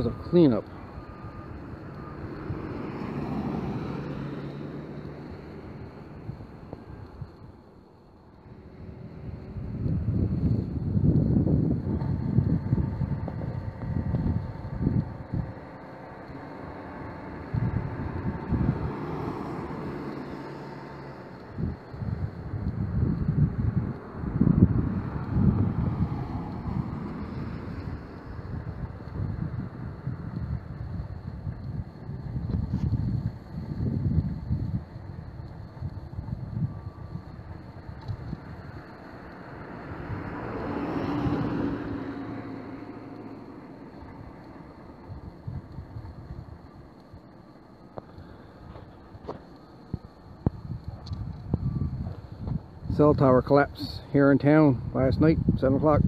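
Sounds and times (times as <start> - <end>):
vehicle passing: 0.0 - 56.0
wind buffeting microphone: 8.4 - 56.0.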